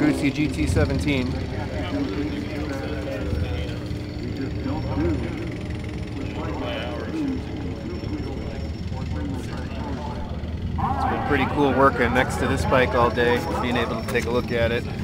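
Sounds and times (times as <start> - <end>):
steady low rumble: 0.0 - 13.9
people talking: 0.0 - 15.0.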